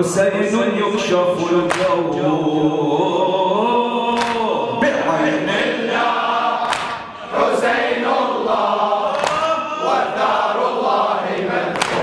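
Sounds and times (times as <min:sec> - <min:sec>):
men chanting in unison: 0:00.0 - 0:12.0
hands slapping chests: 0:01.7 - 0:02.0, 0:04.2 - 0:04.5, 0:06.6 - 0:07.1, 0:09.1 - 0:09.5, 0:11.7 - 0:12.0.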